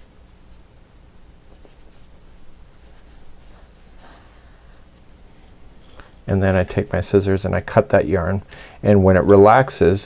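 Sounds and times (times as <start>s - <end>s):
soft brushing sounds: 0.0s - 6.6s.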